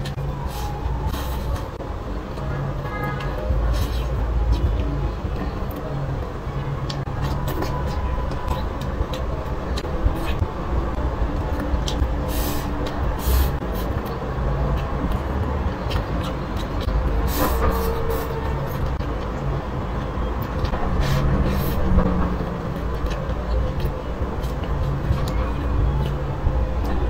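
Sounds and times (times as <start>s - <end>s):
steady low rumble: 0.0s - 27.0s.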